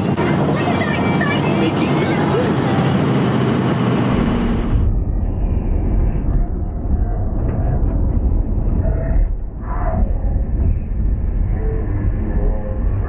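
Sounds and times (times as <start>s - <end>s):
vehicle cabin rumble: 0.0s - 13.0s.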